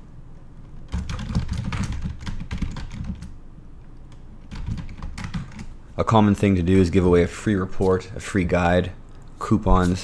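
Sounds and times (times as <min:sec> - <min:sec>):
typing on computer keyboard: 0:00.7 - 0:03.4, 0:04.1 - 0:05.7.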